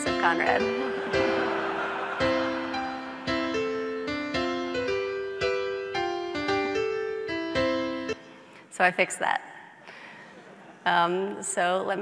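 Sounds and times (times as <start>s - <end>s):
piano music: 0.0s - 8.7s.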